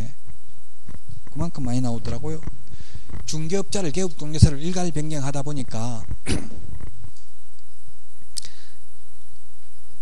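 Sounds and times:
faint hiss and hum: 0.0s - 10.0s.

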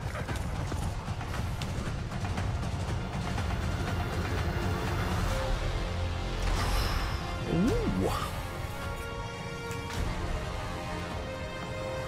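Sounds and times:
horse hooves galloping on grass: 0.0s - 4.2s.

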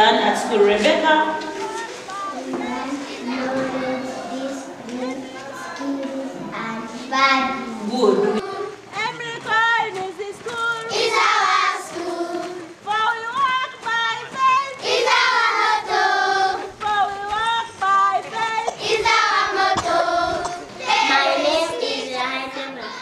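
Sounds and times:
children singing: 1.4s - 12.8s, 13.9s - 23.0s.

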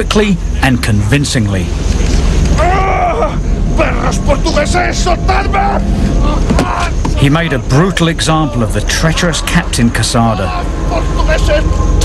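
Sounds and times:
low drone and rumble: 0.0s - 12.0s
voices speaking: 0.0s - 12.0s.

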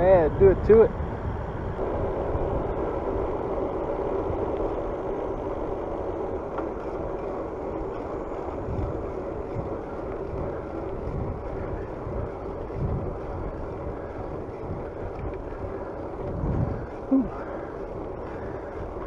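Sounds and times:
bicycle tyres rolling on road: 0.0s - 19.0s
wind gusts on microphone: 0.0s - 19.0s.

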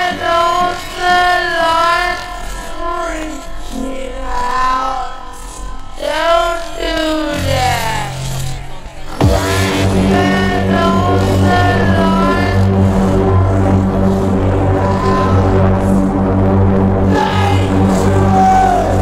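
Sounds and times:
hardcore dance track: 0.0s - 19.0s.

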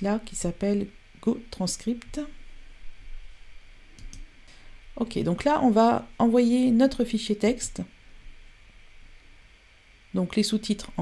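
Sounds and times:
faint short clicks: 4.0s - 4.3s.

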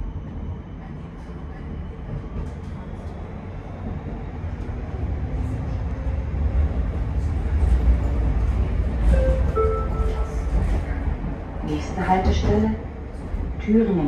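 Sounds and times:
tram wheels rumbling: 0.0s - 14.0s.

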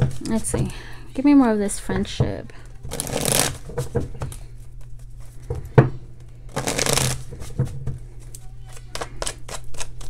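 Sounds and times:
cards being shuffled: 2.9s - 3.7s, 6.5s - 7.5s, 8.2s - 10.0s.

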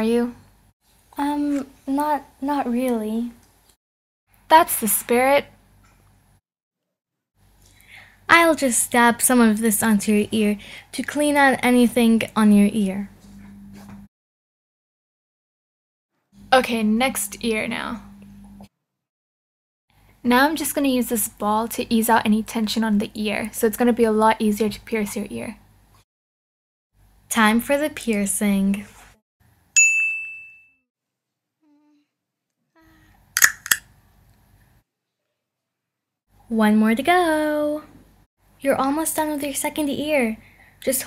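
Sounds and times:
bright ding: 29.8s - 30.8s.

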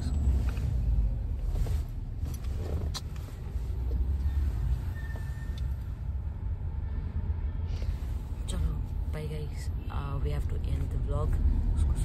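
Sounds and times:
car cabin rumble: 0.0s - 6.3s.

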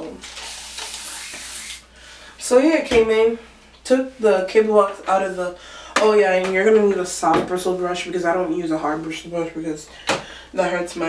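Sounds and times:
spray bottle hissing: 0.3s - 1.8s.

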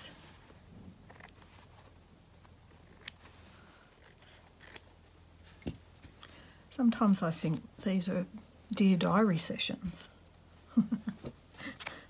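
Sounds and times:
scissors snipping fabric: 2.4s - 3.2s, 3.9s - 4.9s.

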